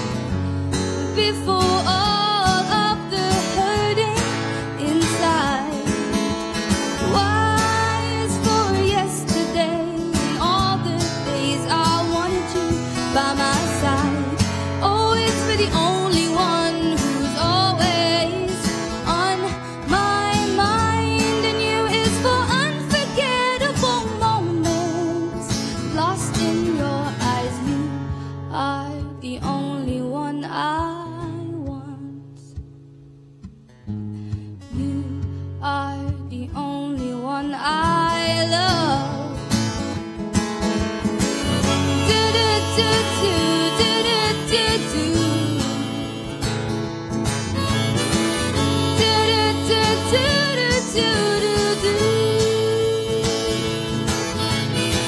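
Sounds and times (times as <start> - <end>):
woman singing: 0.8 - 32.6, 34.6 - 39.9, 41.2 - 46.8, 47.6 - 55.0
live band playing: 40.4 - 55.0.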